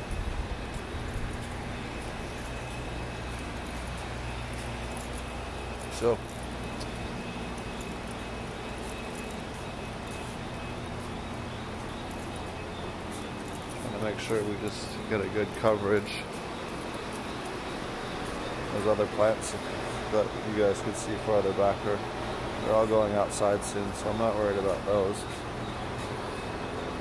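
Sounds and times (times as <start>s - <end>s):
low machinery hum: 0.0s - 27.0s.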